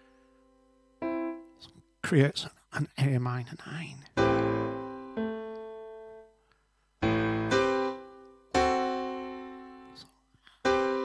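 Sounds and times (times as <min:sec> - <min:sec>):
piano chords: 0:00.0 - 0:01.9, 0:04.1 - 0:06.4, 0:07.0 - 0:11.0.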